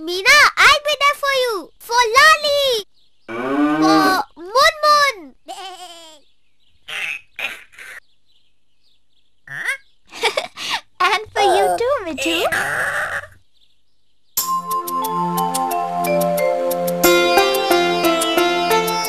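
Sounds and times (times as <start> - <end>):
livestock bleating: 5.5 - 6.2.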